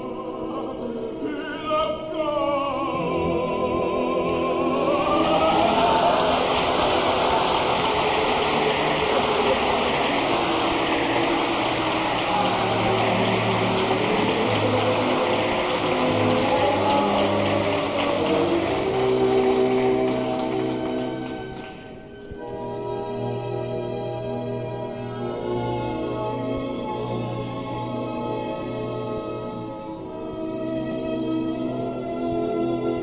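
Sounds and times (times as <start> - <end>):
orchestra music: 0.0 - 33.0
audience applauding: 3.0 - 23.8.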